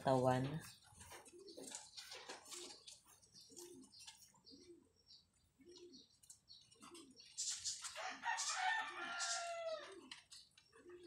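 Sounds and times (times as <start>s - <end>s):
light rustling and scratching: 0.1s - 4.6s.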